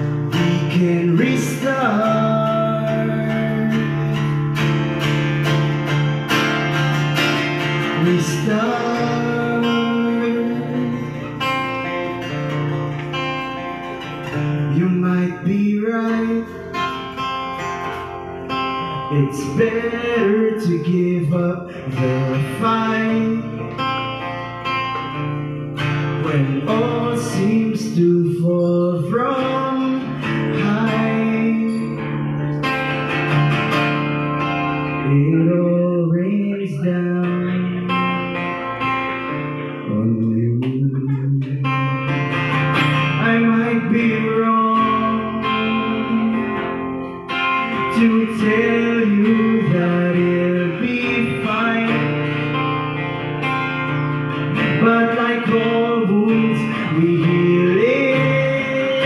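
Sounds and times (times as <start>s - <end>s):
man singing through pa: 0.0s - 4.5s, 7.6s - 11.9s, 14.6s - 16.9s, 18.8s - 23.8s, 26.1s - 32.0s, 34.9s - 38.4s, 39.8s - 47.0s, 47.6s - 52.4s, 54.5s - 59.0s
acoustic guitar strumming: 0.0s - 59.0s.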